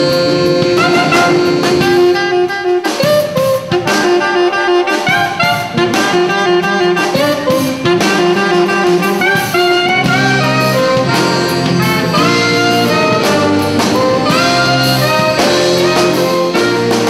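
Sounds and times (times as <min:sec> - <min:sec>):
drum kit: 0:00.0 - 0:17.0
saxophone: 0:00.0 - 0:17.0
trombone: 0:00.0 - 0:17.0
trumpet: 0:00.0 - 0:17.0.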